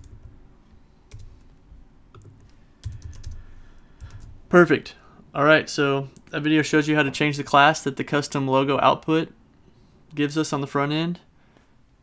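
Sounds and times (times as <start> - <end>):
computer keyboard keystrokes: 2.2 - 3.4, 4.0 - 4.3.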